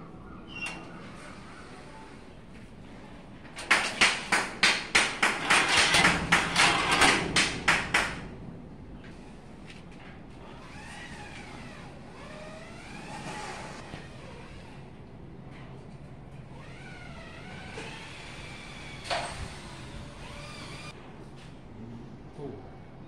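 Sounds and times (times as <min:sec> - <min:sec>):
rapid sharp knocks: 0:03.6 - 0:08.3.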